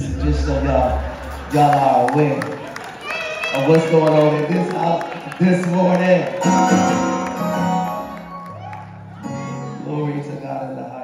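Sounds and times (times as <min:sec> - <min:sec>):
man speaking over microphone: 0:00.0 - 0:02.6, 0:03.6 - 0:06.4, 0:09.8 - 0:11.0.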